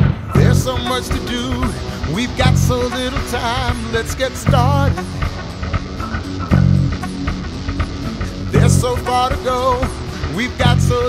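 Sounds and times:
instrumental band music: 0.0s - 11.0s
strong low chord: 0.0s - 11.0s.

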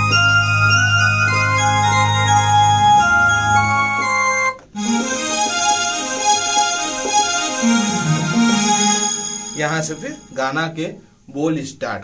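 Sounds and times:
synthesizer flute melody: 0.0s - 10.4s
synthesizer strings held notes: 0.0s - 10.6s.

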